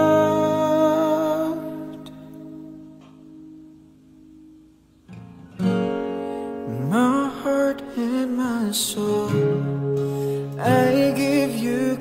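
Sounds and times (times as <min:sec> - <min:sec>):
held chord of worship music: 0:00.0 - 0:03.2
acoustic guitar strumming: 0:00.0 - 0:12.0.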